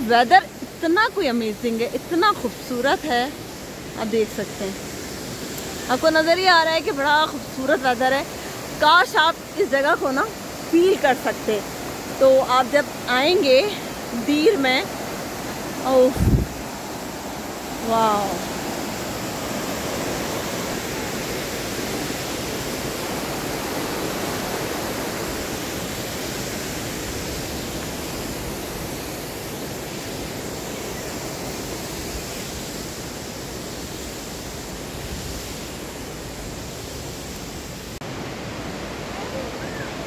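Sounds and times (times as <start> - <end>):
river rushing over rapids: 0.0 - 40.0.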